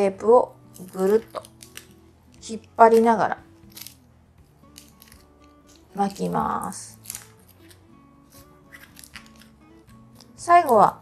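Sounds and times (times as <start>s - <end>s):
soft background music: 0.0s - 11.0s
tape crinkling: 0.6s - 11.0s.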